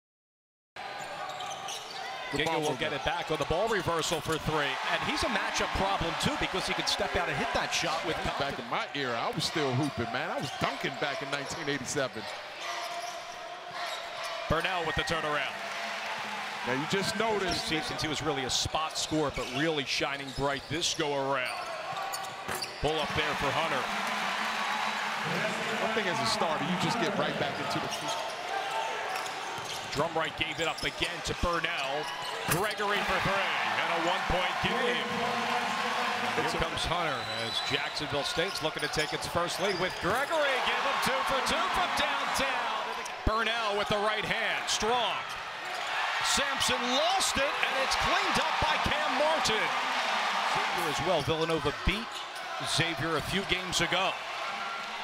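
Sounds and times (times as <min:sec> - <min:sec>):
arena crowd murmur: 0:23.0 - 0:29.1, 0:32.5 - 0:38.0.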